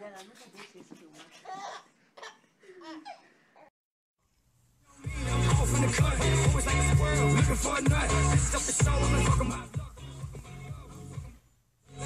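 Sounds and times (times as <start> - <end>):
baby laughing and babbling: 0.4 - 3.7.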